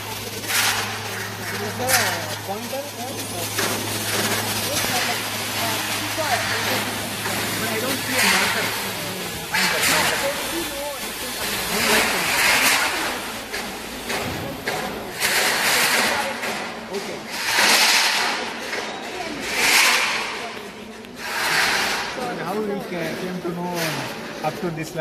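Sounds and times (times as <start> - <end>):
people talking indistinctly: 0.0 - 25.0.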